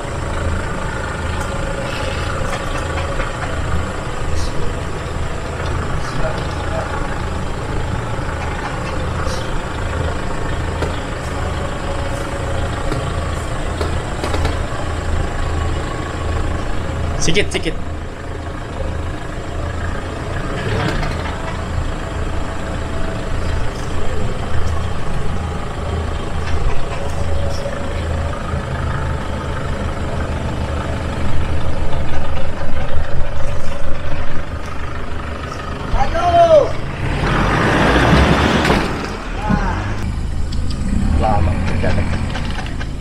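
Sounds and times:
pickup truck engine running: 0:00.0 - 0:43.0.

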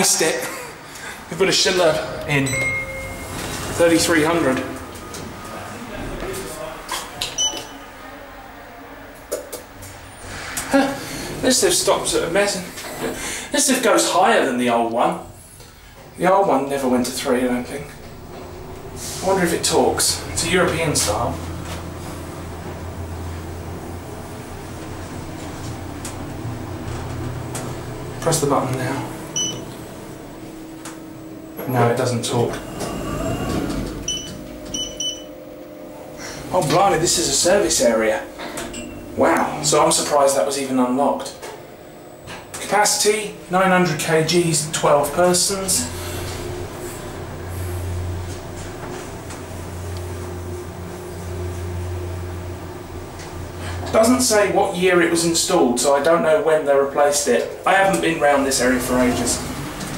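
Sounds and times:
low steady hum: 0:00.0 - 0:59.9
lift car rumbling: 0:01.0 - 0:59.9
short high electronic beep: 0:02.4 - 0:03.8.

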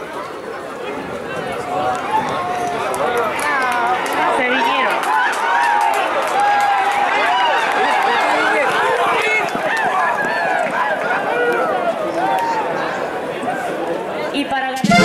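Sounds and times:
crowd shouting and cheering: 0:00.0 - 0:15.0.

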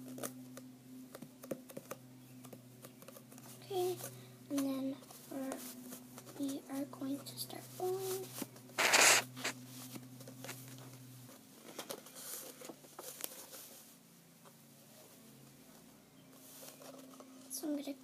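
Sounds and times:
paper and tape handling: 0:07.9 - 0:09.5
sticky tape torn off roll: 0:08.8 - 0:09.5.

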